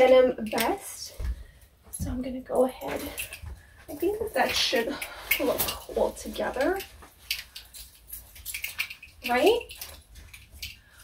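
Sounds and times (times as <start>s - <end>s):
clothing rustling: 0.6s - 11.0s.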